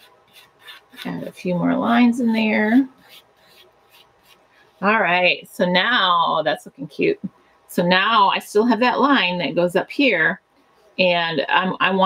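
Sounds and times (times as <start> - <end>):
pencil scratching on paper: 0.0 - 5.0.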